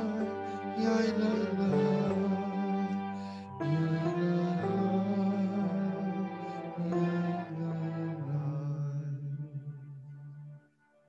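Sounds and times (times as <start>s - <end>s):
slow liturgical music: 0.0s - 11.0s.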